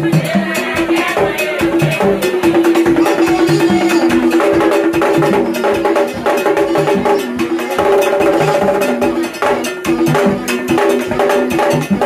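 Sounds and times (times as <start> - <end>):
hand drums: 0.0 - 12.0
bell-like metal percussion: 0.6 - 12.0
held melodic line: 2.4 - 6.9.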